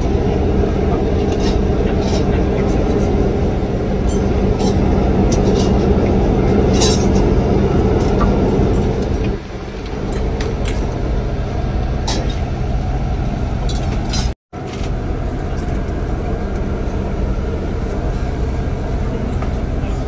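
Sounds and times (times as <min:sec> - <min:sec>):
bus engine hum: 0:00.0 - 0:20.0
road rumble: 0:00.0 - 0:20.0
steel plates and spoons clinking: 0:06.6 - 0:07.4.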